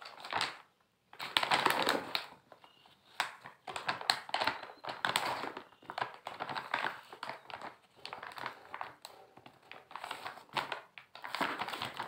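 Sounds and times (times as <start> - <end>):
plastic pouch crinkling: 0.0 - 12.0.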